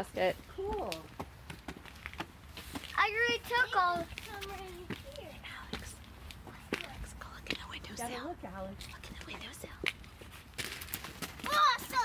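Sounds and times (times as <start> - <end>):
person whispering: 5.2 - 8.2.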